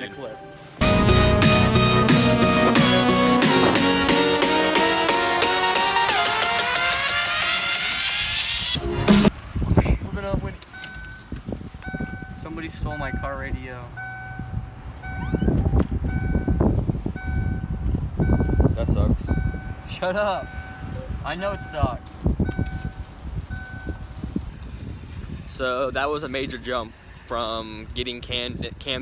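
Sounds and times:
car warning chime beeping: 13.1s - 16.6s, 20.4s - 22.8s.

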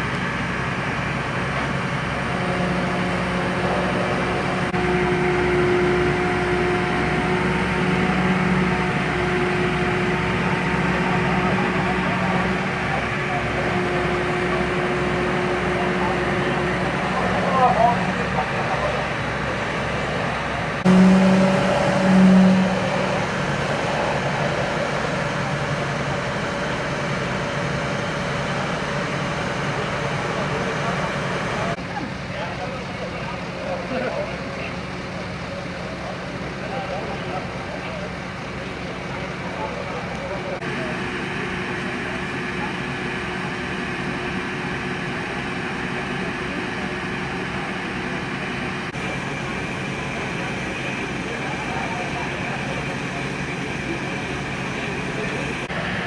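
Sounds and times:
diesel engine running: 0.0s - 56.0s
voices: 0.9s - 56.0s.

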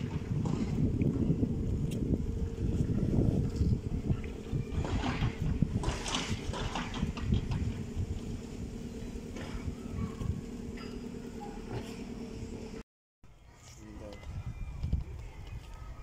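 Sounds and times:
wind buffeting microphone: 0.0s - 10.8s, 14.0s - 16.0s.

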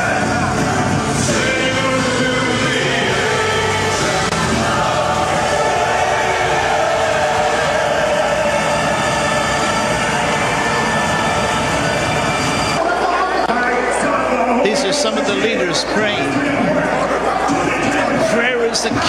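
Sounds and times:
congregation voices in worship: 0.0s - 19.0s.

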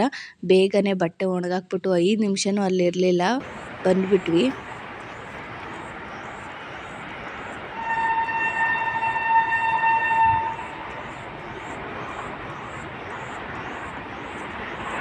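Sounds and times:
train horn blast: 7.7s - 11.1s.

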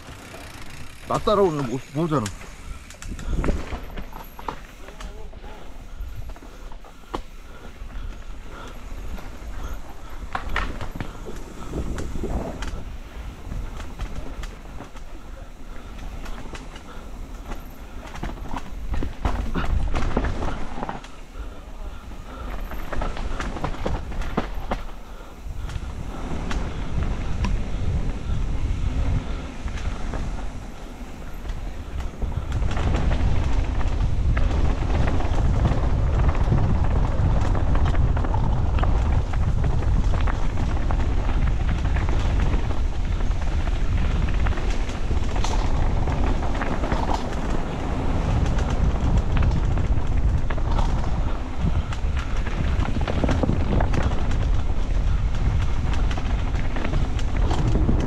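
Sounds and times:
bike chain and frame rattling: 0.0s - 58.0s
wind rumble on microphone: 0.0s - 58.0s
wheels knocking over bumps: 6.1s - 58.0s.

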